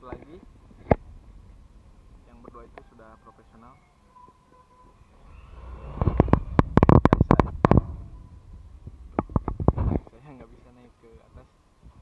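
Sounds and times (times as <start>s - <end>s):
low rumble: 5.0s - 10.7s.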